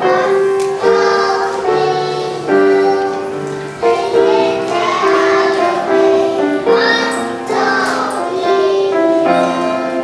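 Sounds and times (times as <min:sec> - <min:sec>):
children singing: 0:00.0 - 0:10.0.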